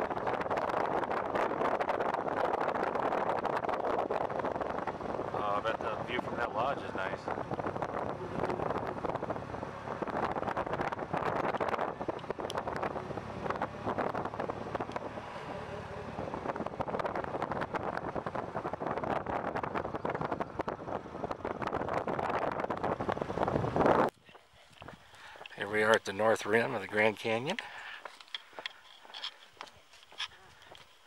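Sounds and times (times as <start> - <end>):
vehicle engine driving: 0.0 - 24.1
wind buffeting microphone: 0.0 - 30.9
road noise: 0.0 - 31.0.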